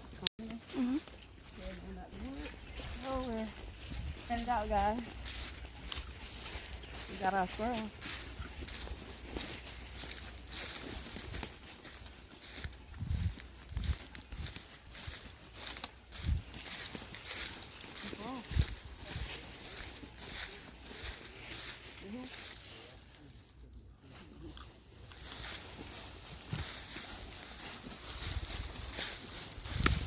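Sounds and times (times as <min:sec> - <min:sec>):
footsteps through dry leaves: 0:00.0 - 0:30.0.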